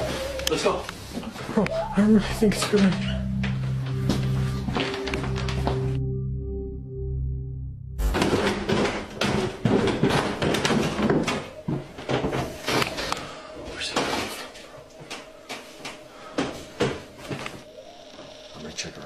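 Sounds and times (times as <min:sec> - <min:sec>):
low droning tone: 0:01.6 - 0:09.3
knocks bumps and clatter: 0:08.0 - 0:12.5.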